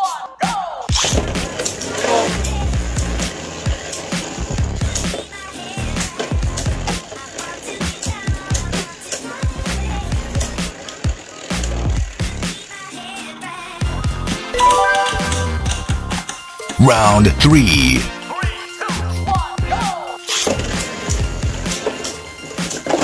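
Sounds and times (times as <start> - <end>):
background music with a beat: 14.6 - 16.4.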